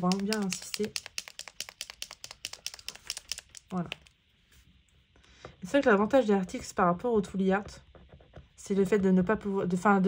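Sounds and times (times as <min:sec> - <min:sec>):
paint marker ball rattling: 0:00.0 - 0:04.2.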